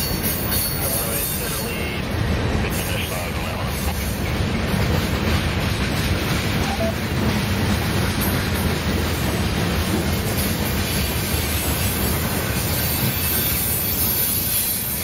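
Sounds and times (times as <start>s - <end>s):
freight train wheels rumbling on rail: 0.0s - 15.0s.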